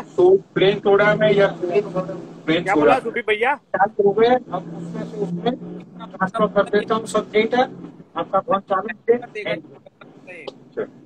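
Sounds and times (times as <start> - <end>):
man speaking: 0.0 - 11.0
steady low hum: 0.0 - 11.0
short vocal sounds: 5.8 - 7.1.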